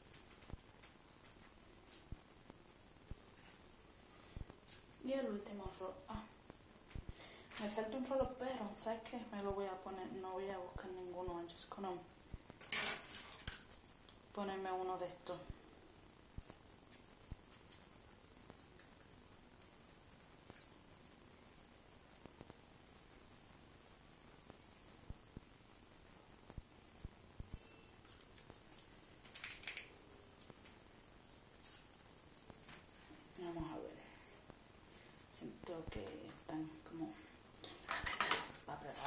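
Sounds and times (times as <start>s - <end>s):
rustling of hair and hair rollers: 37.7s - 39.0s.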